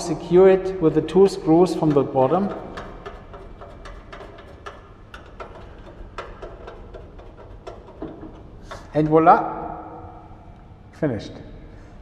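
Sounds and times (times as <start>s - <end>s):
clicks and taps on metal shelf: 1.4s - 9.3s.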